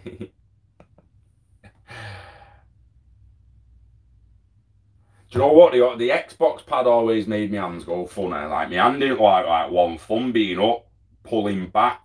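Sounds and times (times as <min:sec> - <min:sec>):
room hum: 0:00.0 - 0:12.0
man sighing: 0:01.6 - 0:02.6.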